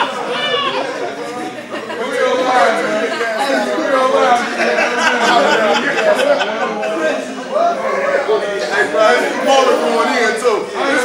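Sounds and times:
men's voices babbling: 0:00.0 - 0:11.0.

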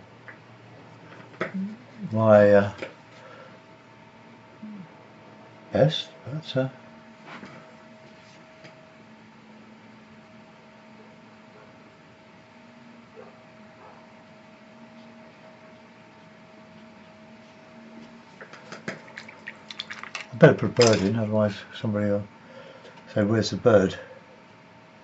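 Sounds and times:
faint electrical hum: 0:00.0 - 0:25.0.

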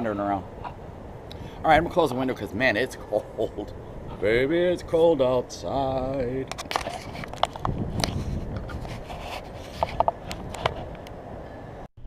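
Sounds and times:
wind rumbling on microphone: 0:00.0 - 0:11.9.

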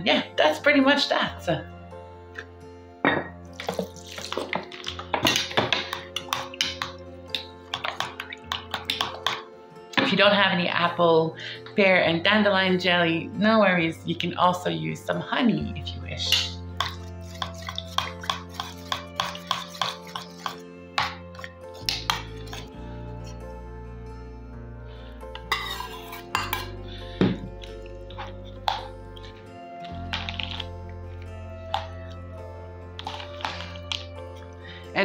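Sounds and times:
metal spoon clinking glass bowl: 0:03.1 - 0:09.4, 0:16.3 - 0:22.7, 0:25.4 - 0:26.7.

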